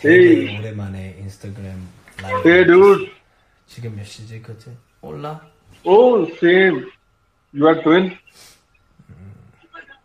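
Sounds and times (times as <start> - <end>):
men talking over video chat: 0.0 - 9.8.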